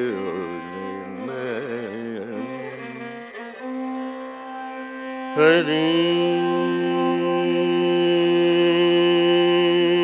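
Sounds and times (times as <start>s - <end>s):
classical raga melody: 0.0s - 10.0s.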